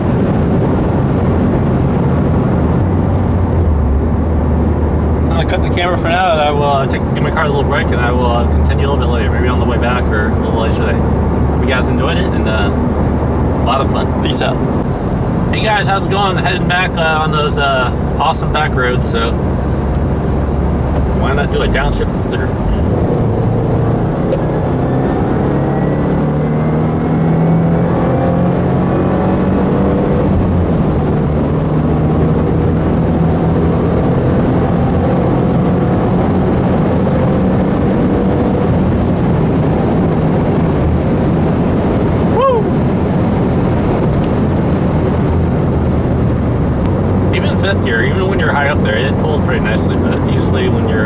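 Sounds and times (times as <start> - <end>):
car engine accelerating: 0.0 - 51.0
road noise inside car: 0.0 - 51.0.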